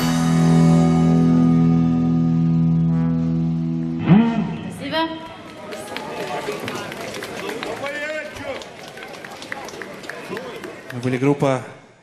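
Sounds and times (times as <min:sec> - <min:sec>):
audience clapping: 0:05.2 - 0:11.6.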